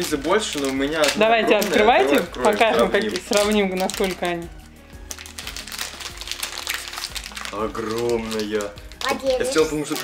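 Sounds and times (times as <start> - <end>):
background music: 0.0 - 10.0
plastic wrappers crinkling: 0.0 - 10.0.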